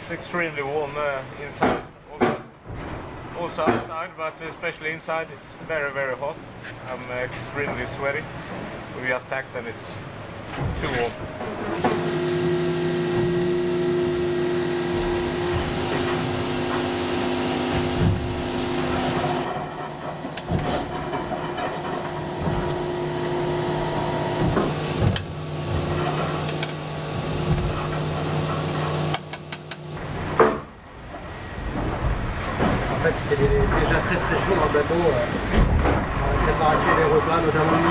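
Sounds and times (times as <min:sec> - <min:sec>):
steady mechanical hum: 0:00.0 - 0:37.9
knocks: 0:14.9 - 0:26.7.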